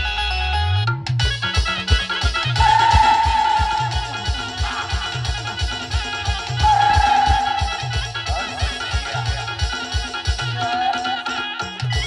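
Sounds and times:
band lead melody: 0:00.0 - 0:12.0
fast bass drum beat: 0:01.2 - 0:10.7.

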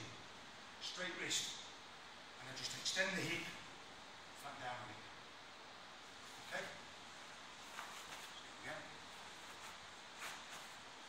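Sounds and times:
room hiss: 0:00.0 - 0:11.0
fabric rustling: 0:06.0 - 0:11.0.

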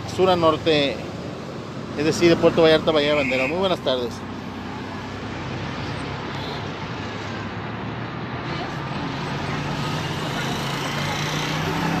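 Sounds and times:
road traffic noise: 0:00.0 - 0:12.0
vehicle engine hum: 0:00.0 - 0:12.0.

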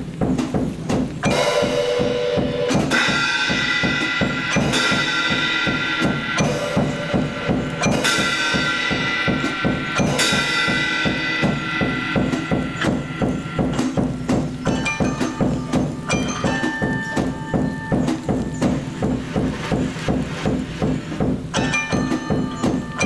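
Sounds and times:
cymbal crashes: 0:00.0 - 0:23.0
drums played with sticks: 0:00.0 - 0:23.0.

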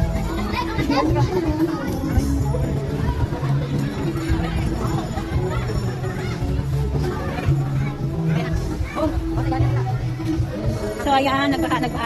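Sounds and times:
children playing and calling out: 0:00.0 - 0:11.0
background music: 0:00.0 - 0:12.0
people's voices: 0:00.0 - 0:12.0.

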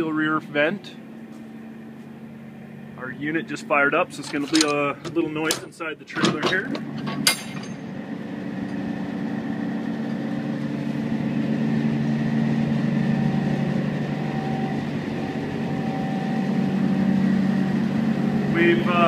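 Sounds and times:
refrigeration unit droning: 0:00.0 - 0:19.0.

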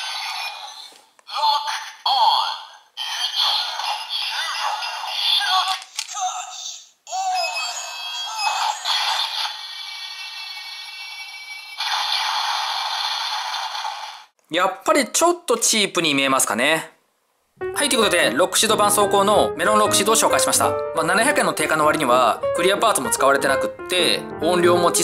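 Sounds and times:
tinny jingle music: 0:17.6 - 0:25.0.

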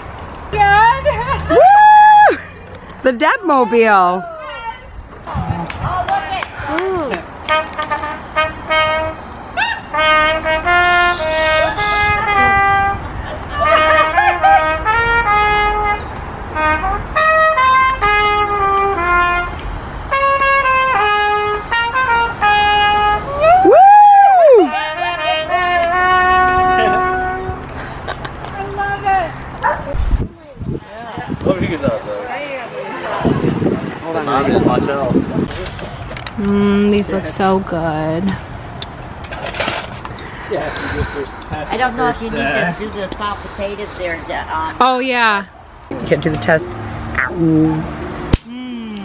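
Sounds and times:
voices: 0:00.5 - 0:16.0, 0:24.6 - 0:38.5, 0:40.1 - 0:49.0
brass melody: 0:07.5 - 0:23.4, 0:24.7 - 0:27.7
loud pitch swoop: 0:47.1 - 0:49.0.

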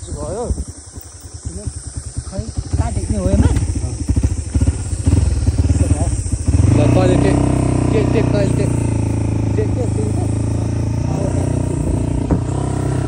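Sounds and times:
dirt bike engine running: 0:00.0 - 0:13.0.

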